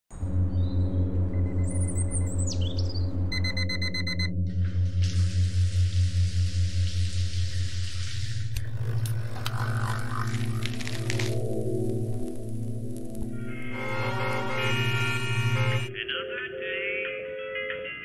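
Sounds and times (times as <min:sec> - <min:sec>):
low synth drone music: 0:00.1 - 0:16.1
rapid electronic beeping: 0:03.3 - 0:04.4, 0:13.4 - 0:16.0
shower water running: 0:04.8 - 0:08.6
high falling synth glides: 0:08.6 - 0:15.9.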